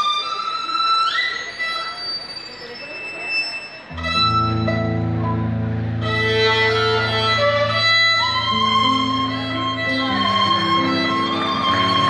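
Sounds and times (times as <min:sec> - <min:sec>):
solo violin high sustained notes: 0:00.0 - 0:12.0
band with strong bass note: 0:03.9 - 0:12.0.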